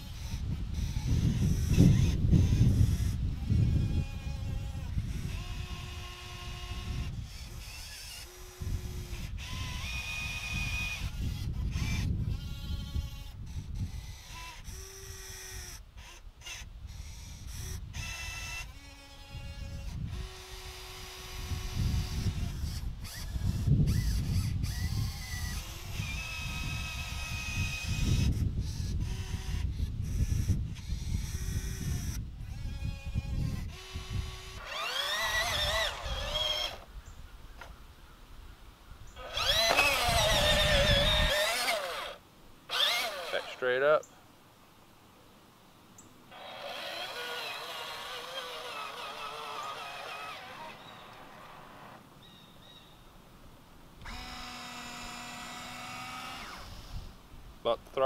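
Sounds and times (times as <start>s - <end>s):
toy excavator motors whining: 0.0s - 36.9s, 39.1s - 44.0s, 46.3s - 52.8s, 54.0s - 58.0s.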